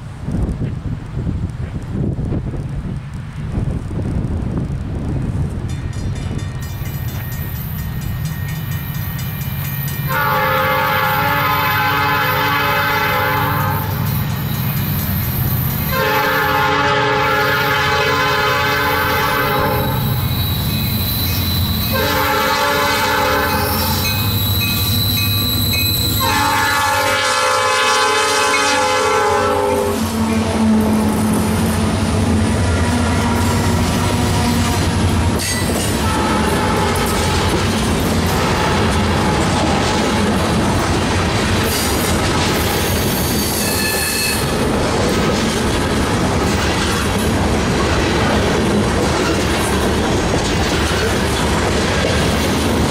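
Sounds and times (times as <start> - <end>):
locomotive engines rumbling: 0.0 - 52.9
rail car wheel clatter: 0.0 - 52.9
locomotive air horn blasts: 10.1 - 14.1, 15.9 - 20.2, 21.6 - 31.7, 36.0 - 37.6, 38.3 - 39.6.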